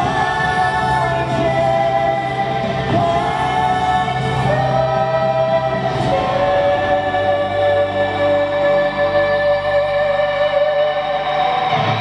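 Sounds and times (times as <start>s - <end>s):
band with electric guitar: 0.0s - 12.0s.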